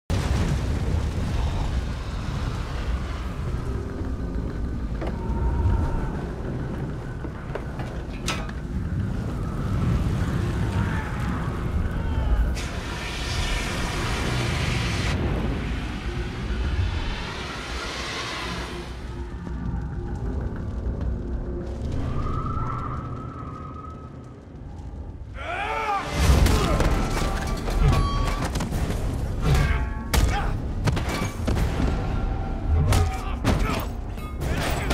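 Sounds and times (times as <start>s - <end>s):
dramatic film music: 0.3s - 34.9s.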